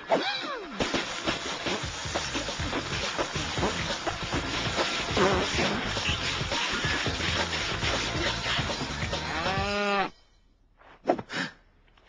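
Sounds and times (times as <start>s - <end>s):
music: 0.8s - 10.2s
cow mooing: 9.2s - 10.1s.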